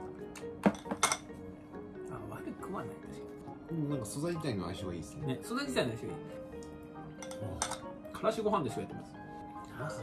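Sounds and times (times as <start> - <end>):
background music: 0.0 - 10.0
utensil clinking against dish: 0.6 - 1.3, 7.2 - 7.9.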